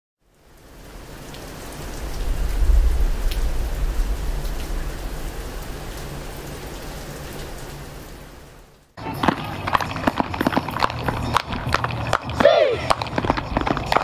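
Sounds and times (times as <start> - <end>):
steady rain falling: 0.2 - 9.0
deep low rumble: 1.8 - 8.0.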